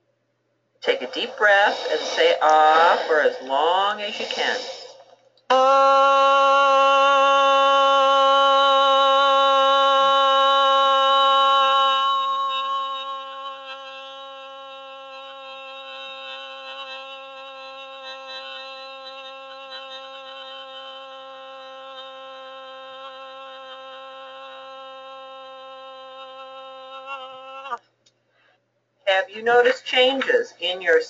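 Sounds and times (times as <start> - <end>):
woman holding sustained ah: 0.8 - 27.8.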